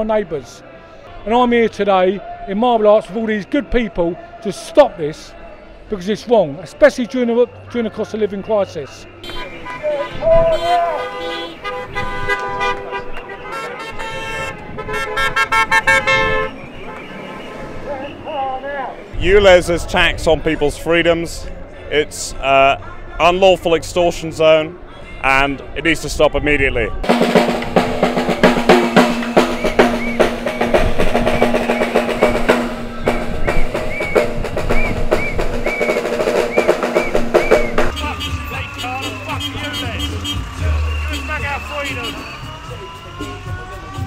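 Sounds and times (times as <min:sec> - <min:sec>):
car horns honking: 0:07.5 - 0:18.6, 0:27.1 - 0:44.0
drumming with snare rolls: 0:27.0 - 0:44.0.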